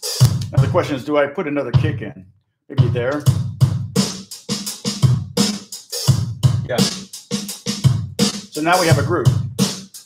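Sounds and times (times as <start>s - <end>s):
drum machine beat: 0.0s - 1.0s, 1.6s - 10.0s.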